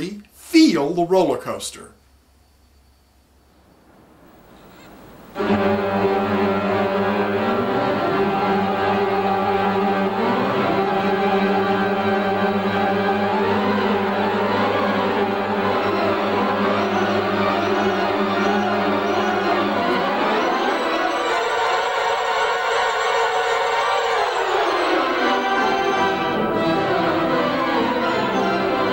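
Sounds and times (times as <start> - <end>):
theatre pipe organ playing: 4.7 - 28.9.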